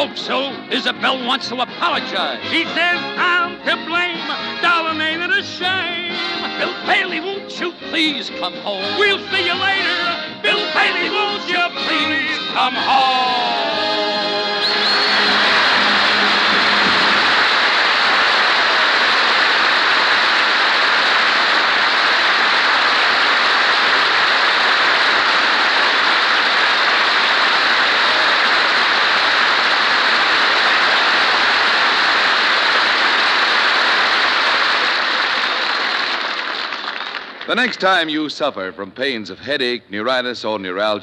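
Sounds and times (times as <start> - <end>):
audience applauding: 10.5 - 38.3.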